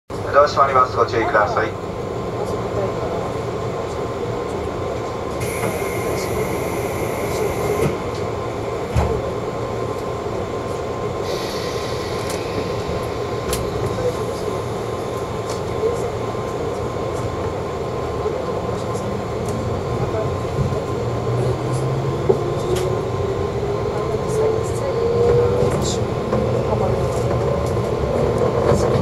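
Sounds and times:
train carriage running noise: 0.1 - 29.0
high hiss: 11.2 - 14.9.

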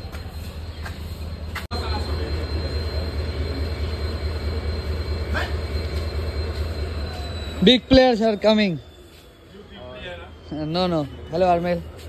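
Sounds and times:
train rumbling: 0.0 - 12.0
faint steady high tone: 1.4 - 12.0.

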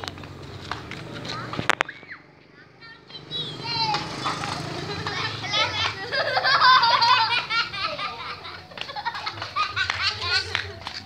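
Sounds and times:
children calling out and laughing: 0.6 - 11.0.

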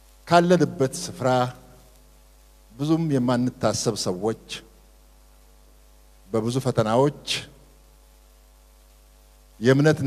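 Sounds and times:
faint electrical hum: 0.0 - 10.0
man speaking: 0.3 - 1.7, 2.8 - 4.7, 6.3 - 7.6, 9.6 - 10.0.

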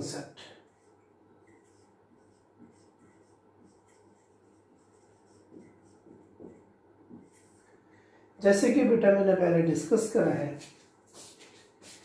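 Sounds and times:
marker pen on whiteboard: 0.0 - 12.0.

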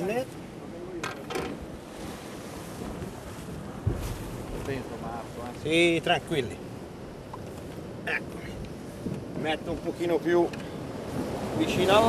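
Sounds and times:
surf washing against rocks: 0.0 - 12.0
wind buffeting microphone: 0.0 - 12.0
dull thump: 3.8 - 4.7.

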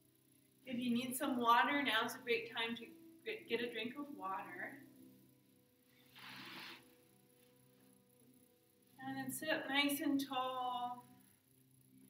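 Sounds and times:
soft hiss like a breath: 5.7 - 8.1.

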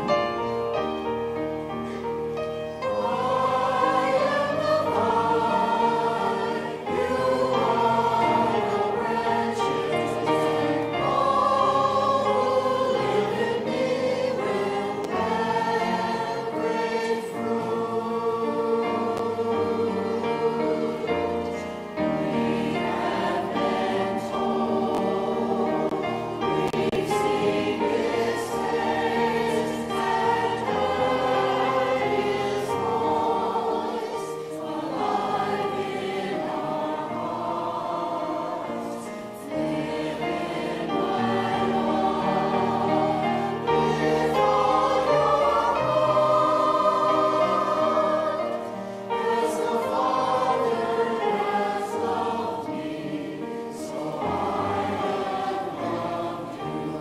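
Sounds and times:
church choir singing a hymn: 0.0 - 57.0.

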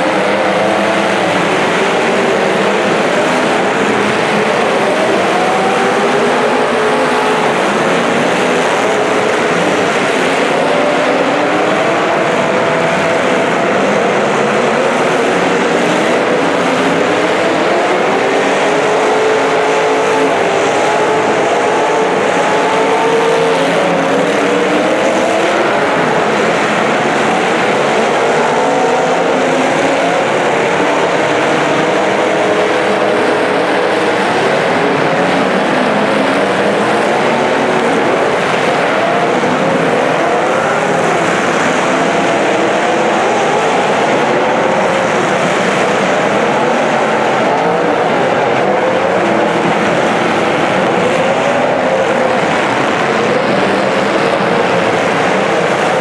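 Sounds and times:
car engines revving: 0.0 - 56.0.

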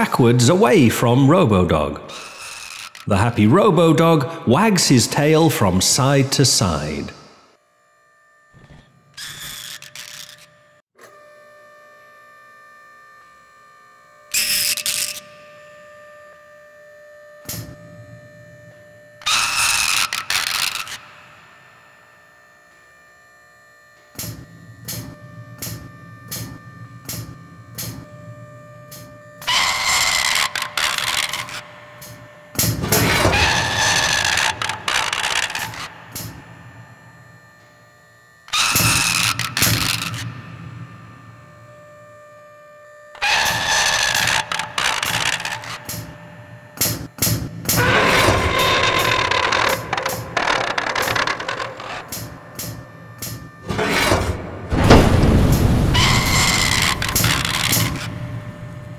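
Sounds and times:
electronic hum: 1.9 - 58.9
mechanical whirring: 2.1 - 3.2, 5.3 - 10.8, 14.2 - 58.9.

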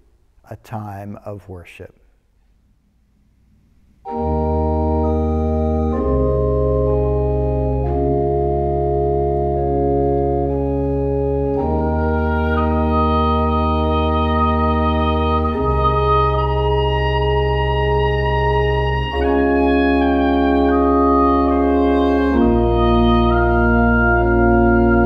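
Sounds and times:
pipe organ chorale: 4.0 - 25.0
woodwind melody: 4.1 - 25.0.

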